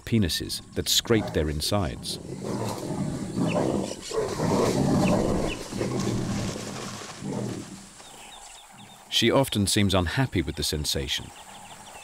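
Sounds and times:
jaguars growling and snarling: 0.9 - 8.9.

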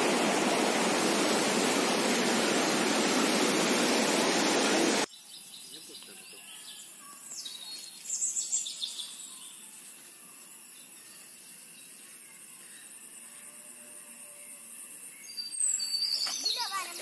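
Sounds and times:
insects droning: 0.0 - 17.0
bird chirps: 5.1 - 12.9, 15.2 - 16.9.

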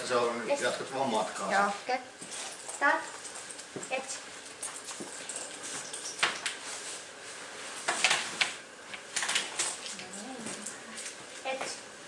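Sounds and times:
dog moving on concrete floor: 2.2 - 7.0.

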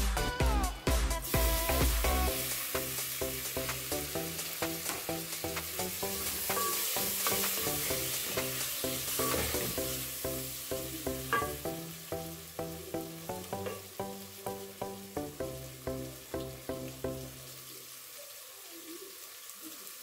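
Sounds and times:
music with plucked beat: 0.0 - 17.4
tomatoes sizzling in hot oil: 1.2 - 20.0
wooden spoon stirring pot: 4.6 - 10.0.

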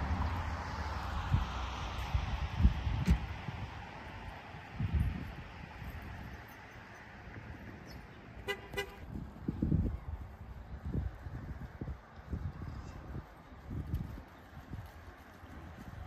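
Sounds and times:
car horn toots: 8.4 - 9.0.

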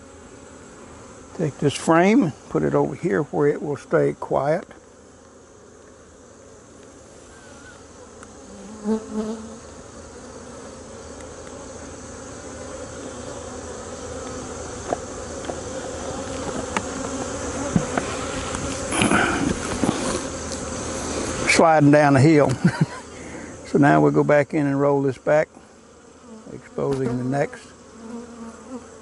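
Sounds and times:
honeybees buzzing: 0.0 - 29.0.

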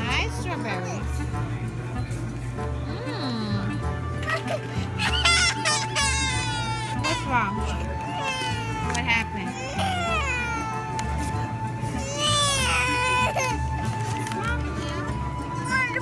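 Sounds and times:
background music with steady beat: 0.0 - 16.0
toddler whining and crying: 4.2 - 16.0.

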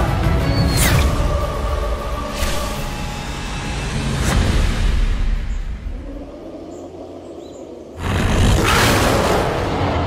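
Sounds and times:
birds chirping: 5.4 - 8.6.

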